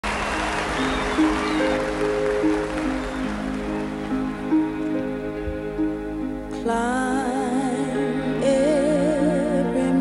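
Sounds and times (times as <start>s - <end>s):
studio audience applause: 0.0s - 5.0s
slow instrumental ballad: 0.9s - 10.0s.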